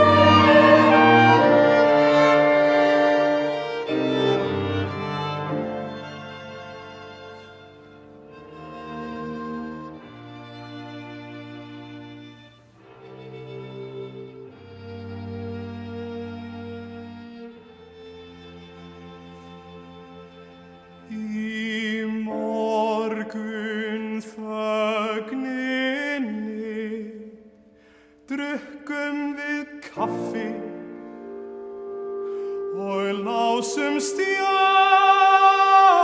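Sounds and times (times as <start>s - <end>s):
string trio playing sustained chords: 0.0s - 22.4s.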